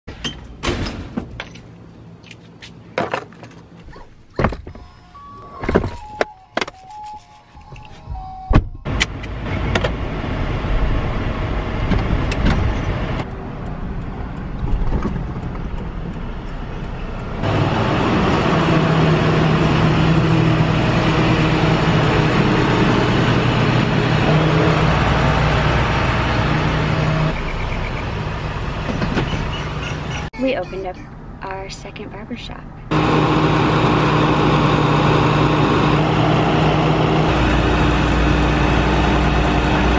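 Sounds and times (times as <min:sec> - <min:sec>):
car road and wind noise: 0:00.1 - 0:06.7, 0:07.6 - 0:39.9
car doors knocking and clicking: 0:04.4 - 0:04.8.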